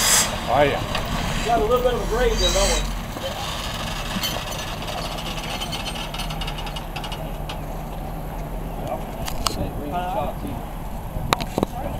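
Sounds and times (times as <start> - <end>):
vehicle engine running under load: 0.0 - 11.9.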